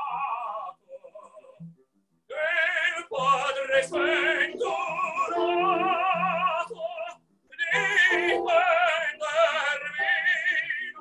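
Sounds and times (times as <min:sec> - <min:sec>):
operatic tenor singing: 0:00.0 - 0:01.7, 0:02.3 - 0:11.0.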